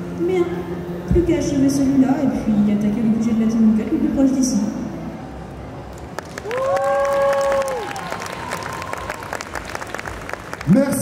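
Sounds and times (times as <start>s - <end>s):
audience applauding: 5.9s - 11.0s
people cheering: 6.2s - 11.0s.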